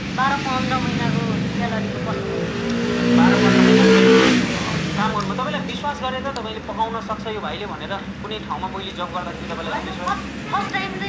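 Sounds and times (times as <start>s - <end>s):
vehicle engine: 0.0s - 11.0s.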